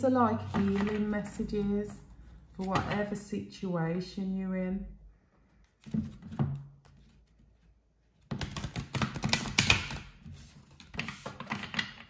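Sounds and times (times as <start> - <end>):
cards being shuffled: 8.3 - 12.0.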